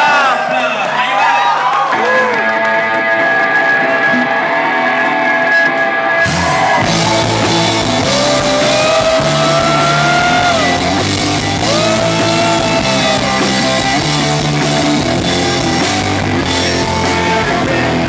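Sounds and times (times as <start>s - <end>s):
electric guitar chords: 1.9s - 18.0s
rock band playing: 1.9s - 18.0s.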